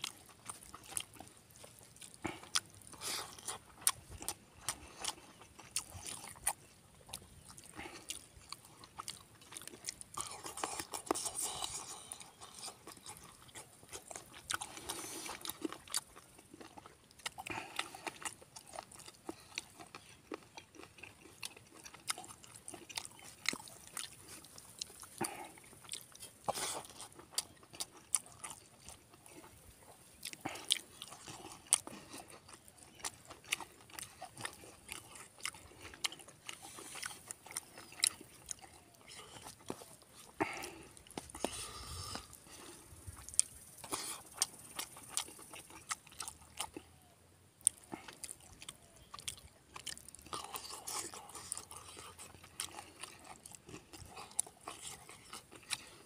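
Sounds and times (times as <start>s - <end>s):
chewing with wet mouth clicks: 0.0s - 56.0s.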